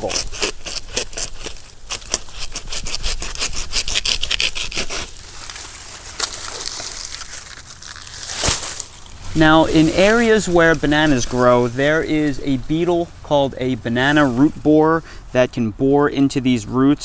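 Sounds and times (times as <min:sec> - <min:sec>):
handsaw rasping through plant stem: 0:00.0 - 0:07.5.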